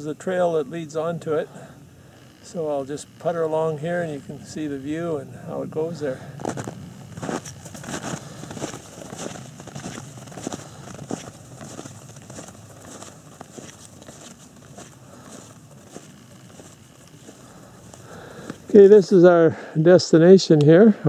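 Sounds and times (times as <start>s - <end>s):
footsteps crunching through snow: 5.8s - 19.5s.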